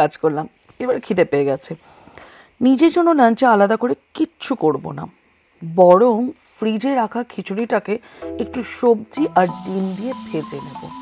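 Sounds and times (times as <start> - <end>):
background music with singing: 7.6 - 11.0
onion sizzling in hot oil: 8.2 - 11.0.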